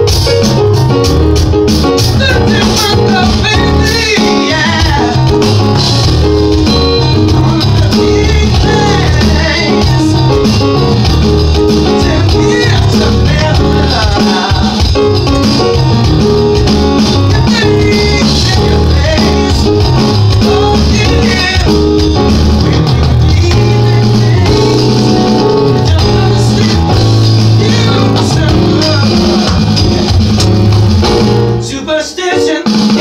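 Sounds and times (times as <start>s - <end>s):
strong bass line: 0.0s - 31.8s
electronic drum kit: 0.0s - 33.0s
keyboard: 0.0s - 33.0s
live band music: 0.0s - 33.0s.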